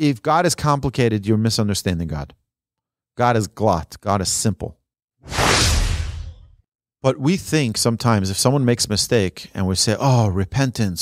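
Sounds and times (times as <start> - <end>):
whoosh: 5.2 - 6.6.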